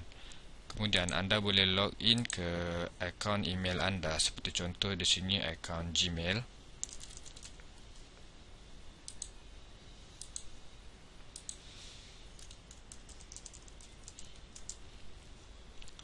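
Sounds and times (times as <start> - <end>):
low background hum: 0.0 - 16.0
computer keyboard and mouse clicking: 6.8 - 7.6, 9.1 - 9.4, 10.2 - 10.5, 11.4 - 11.6, 12.4 - 14.8.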